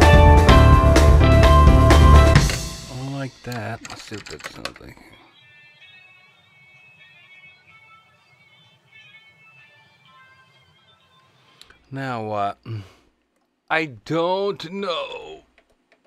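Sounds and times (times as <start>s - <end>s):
rock song with drums and guitar: 0.0s - 3.1s
faint steady tones: 2.5s - 15.7s.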